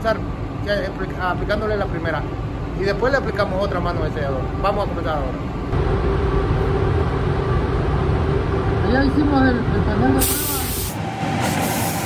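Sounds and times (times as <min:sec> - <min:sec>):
ventilation rumble: 0:00.0 - 0:12.0.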